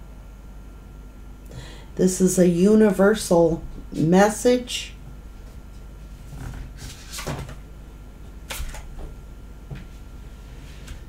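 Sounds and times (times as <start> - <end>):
cards being shuffled: 6.3 - 7.6.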